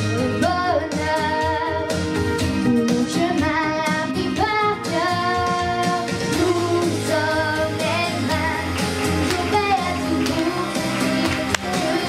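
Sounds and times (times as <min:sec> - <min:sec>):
girl singing pop song: 0:00.0 - 0:12.0
instrumental accompaniment: 0:00.0 - 0:12.0.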